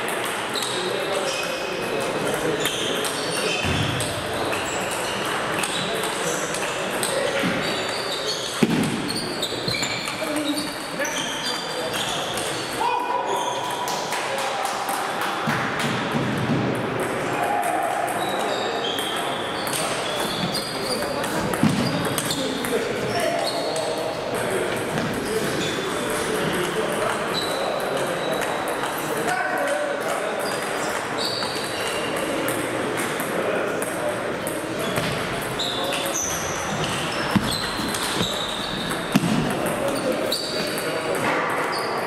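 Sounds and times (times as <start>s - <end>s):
table tennis balls ticking: 0.0s - 9.0s, 16.9s - 41.2s
murmur of voices: 0.0s - 42.0s.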